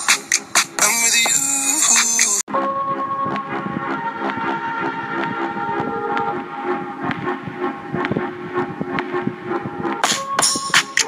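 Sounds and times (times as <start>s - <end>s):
synth chords over light beat: 0.0s - 11.0s.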